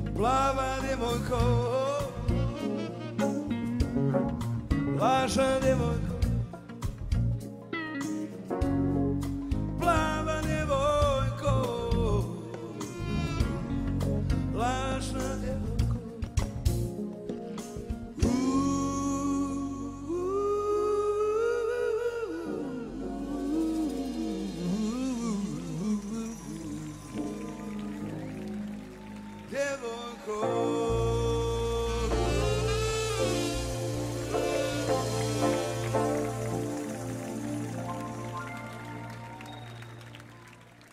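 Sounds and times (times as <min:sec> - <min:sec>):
low bass: 0:00.0 - 0:07.6, 0:08.5 - 0:17.1, 0:17.8 - 0:29.6, 0:30.5 - 0:40.4
live band music: 0:00.0 - 0:40.9
long held note: 0:31.8 - 0:40.1.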